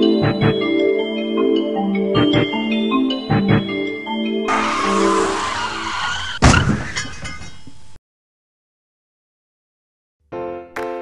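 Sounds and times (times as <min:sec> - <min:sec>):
marimba music: 0:00.0 - 0:04.8
car tyres screeching: 0:04.5 - 0:07.1.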